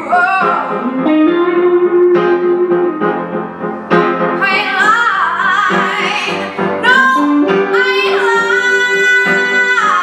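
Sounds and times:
electric guitar: 0:00.3 - 0:03.7
woman singing: 0:04.4 - 0:10.0.

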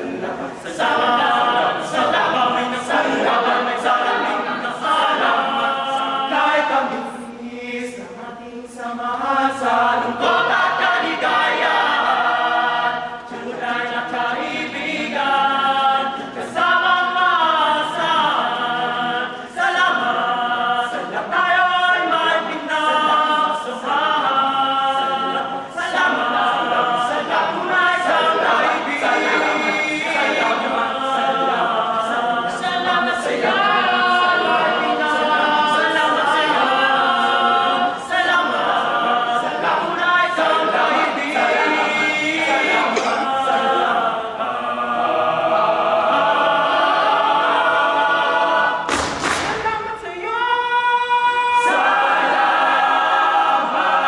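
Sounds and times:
boys' choir singing a cappella: 0:00.0 - 0:54.0.

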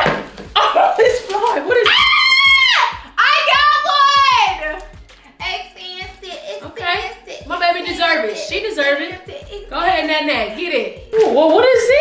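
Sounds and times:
women squealing: 0:01.8 - 0:04.6.

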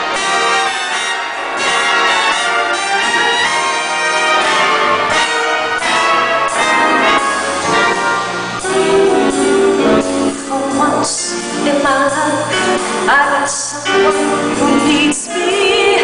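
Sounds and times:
big band brass playing: 0:00.0 - 0:16.0.

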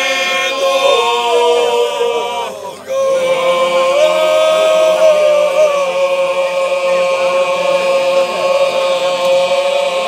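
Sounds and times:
men singing one long note: 0:00.0 - 0:10.0.

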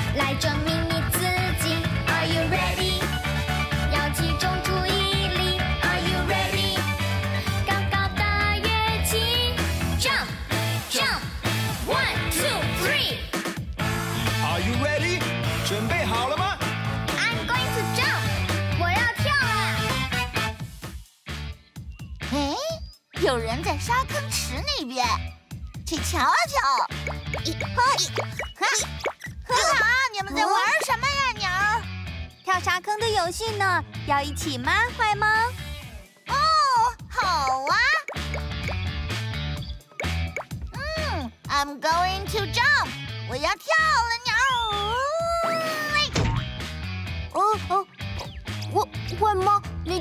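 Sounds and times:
cartoon background music: 0:00.0 - 0:50.0.

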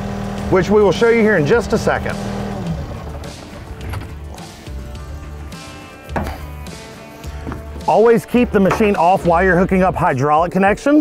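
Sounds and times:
engine winding down: 0:00.0 - 0:05.2
sharp knocks: 0:06.1 - 0:06.6.

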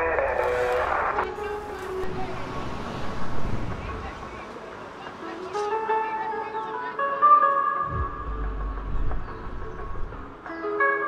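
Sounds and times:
voices: 0:00.0 - 0:10.9
plucked string melody: 0:05.2 - 0:11.0
low engine rumble: 0:07.9 - 0:10.5.

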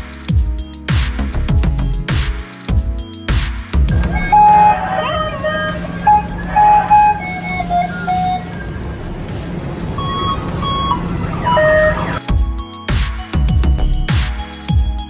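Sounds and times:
tinny amusement ride music: 0:03.8 - 0:15.0.

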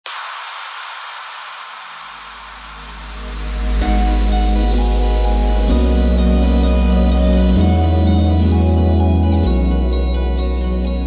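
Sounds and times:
hissing whoosh: 0:00.0 - 0:07.8
deep bass swell: 0:02.6 - 0:11.0.

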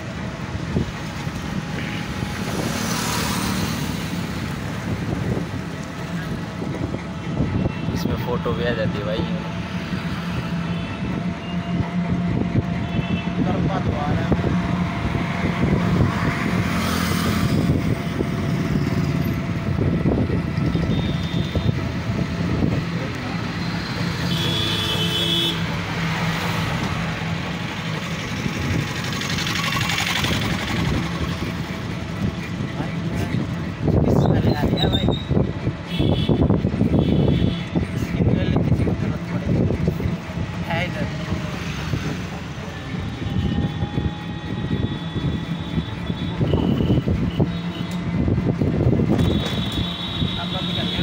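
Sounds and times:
vehicle engine and road noise: 0:00.0 - 0:51.0.

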